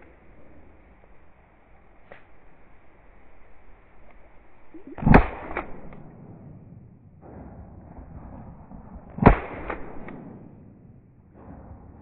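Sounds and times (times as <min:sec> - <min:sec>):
shotgun firing: 0:04.9 - 0:12.0.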